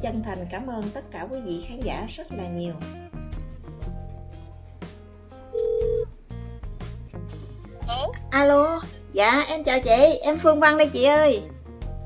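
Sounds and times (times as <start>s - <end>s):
background music with low notes: 0.0s - 12.0s
telephone tone: 5.5s - 6.1s.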